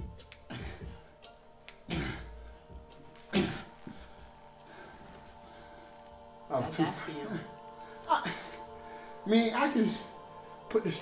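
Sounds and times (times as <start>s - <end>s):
background music: 0.0s - 11.0s
man talking: 6.5s - 8.6s, 9.2s - 11.0s.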